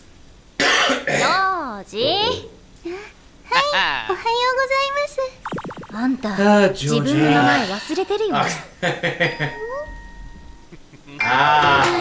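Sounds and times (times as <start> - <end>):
high-pitched voice speaking: 1.3 - 2.3.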